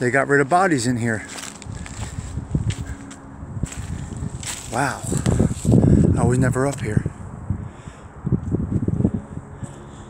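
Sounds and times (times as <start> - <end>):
footsteps through dry leaves: 1.0 - 5.9.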